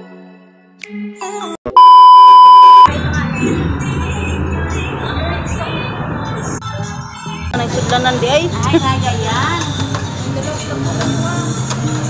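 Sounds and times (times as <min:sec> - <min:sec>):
high-pitched test-tone beep: 0:01.7 - 0:02.9.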